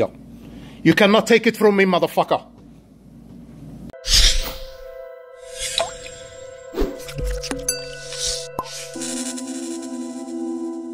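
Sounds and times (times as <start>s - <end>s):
low synth tone: 4.7s - 9.8s.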